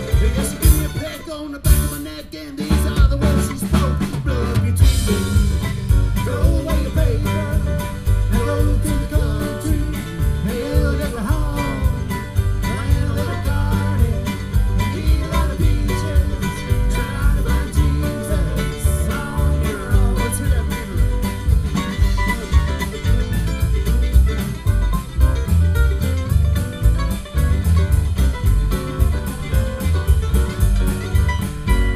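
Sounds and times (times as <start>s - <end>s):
mandolin: 0.0s - 31.9s
strummed acoustic guitar: 0.0s - 31.9s
upright bass: 0.0s - 31.9s.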